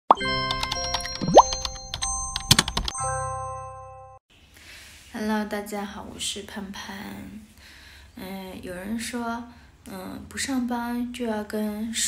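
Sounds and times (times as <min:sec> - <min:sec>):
playful jingle: 0:00.1 - 0:04.2.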